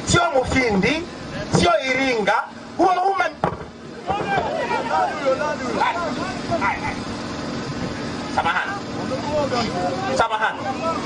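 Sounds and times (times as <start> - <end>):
steady low hum: 0.0 - 11.0
people talking indistinctly: 0.1 - 11.0.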